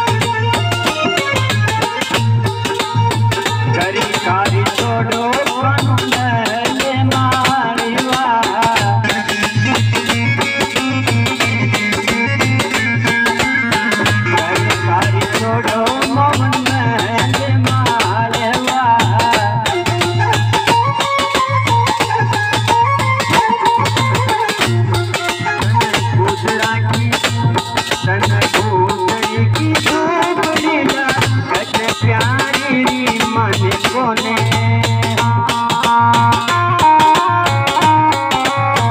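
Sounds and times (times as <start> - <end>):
sustained harmonium notes: 0.0 - 32.3, 32.9 - 38.9
hand drum fast beat: 0.0 - 38.9.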